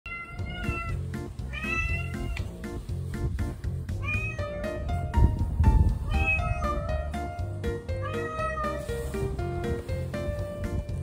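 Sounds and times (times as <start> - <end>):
cat meowing: 0.1 - 2.6, 3.9 - 5.1, 6.0 - 9.2
background music with steady beat: 0.1 - 11.0.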